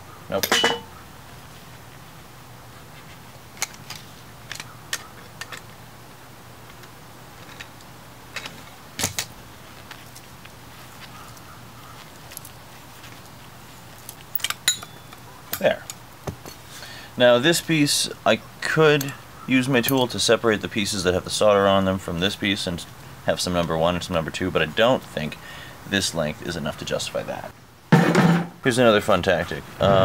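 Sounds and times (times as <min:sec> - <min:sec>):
metallic clinks and knocks: 0:00.4 - 0:00.9, 0:14.3 - 0:16.7.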